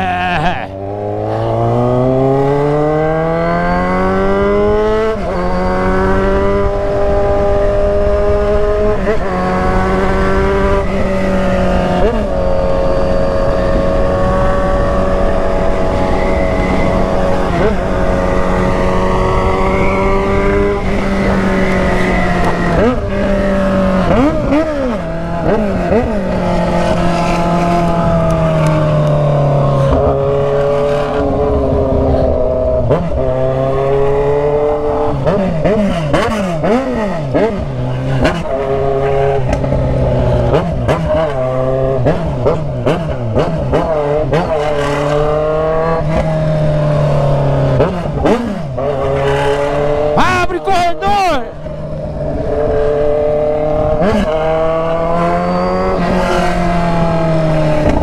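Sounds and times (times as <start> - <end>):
motorcycle engine while riding: 0.0 - 50.5, 51.5 - 58.0.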